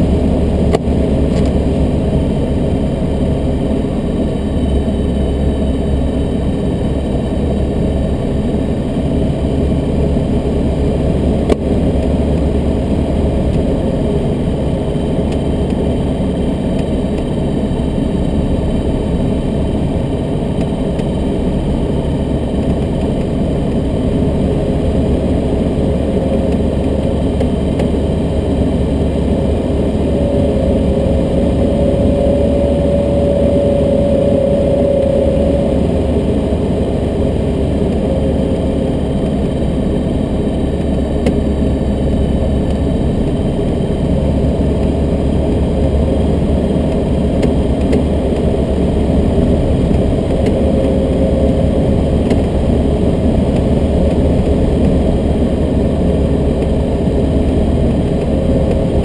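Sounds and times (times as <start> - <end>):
aircraft engine and propeller drone: 0.0 - 59.0
steady higher tone: 0.0 - 59.0.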